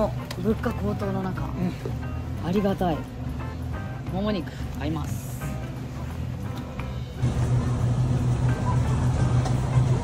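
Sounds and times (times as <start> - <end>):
background music: 0.0 - 10.0
refrigerated display case hum: 0.0 - 10.0.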